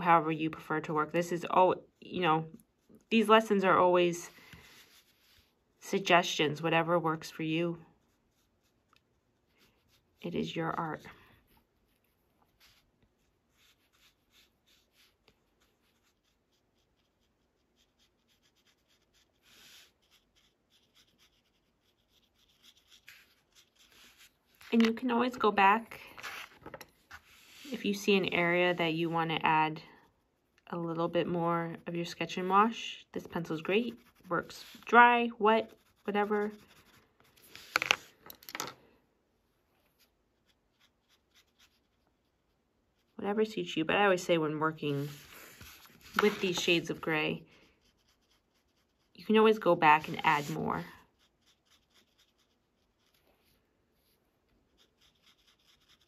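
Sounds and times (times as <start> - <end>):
paintbrush strokes on paper: 2.0 - 29.6, 30.4 - 38.2, 39.8 - 56.0
clatter of small tools on desk: 37.7 - 38.8.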